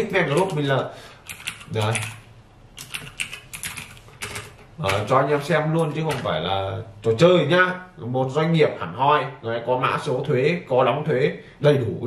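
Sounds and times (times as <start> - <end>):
keyboard typing: 0.2 - 6.3.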